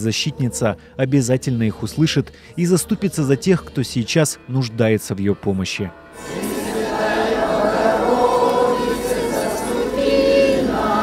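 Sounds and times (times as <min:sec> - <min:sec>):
choir chanting: 0:05.7 - 0:11.0.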